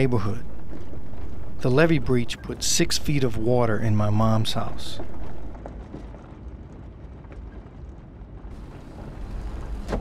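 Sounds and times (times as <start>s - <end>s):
car driving slowly: 8.5s - 10.0s.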